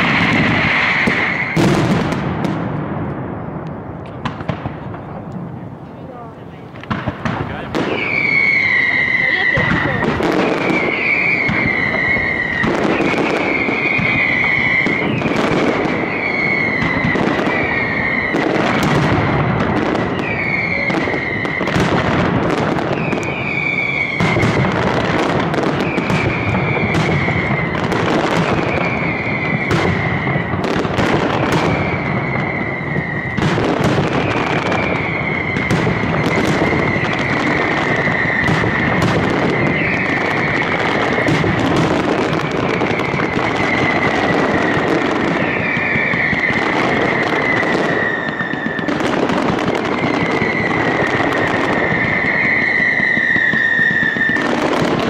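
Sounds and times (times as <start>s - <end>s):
firecracker bangs and cracks: 0.0s - 55.0s
whistling fireworks: 0.0s - 55.0s.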